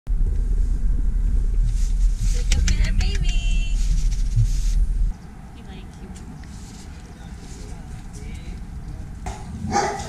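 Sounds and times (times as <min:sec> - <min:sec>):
car engine rumble: 0:00.1 - 0:10.0
road noise inside car: 0:00.1 - 0:10.0.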